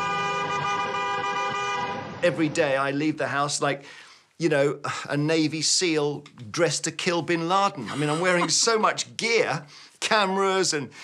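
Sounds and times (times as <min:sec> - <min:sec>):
car horn blast: 0:00.0 - 0:02.2.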